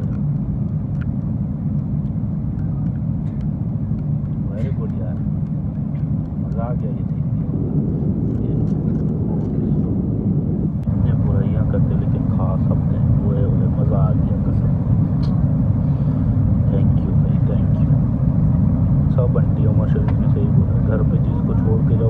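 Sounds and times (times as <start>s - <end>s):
airliner engine rumble: 0.0s - 22.0s.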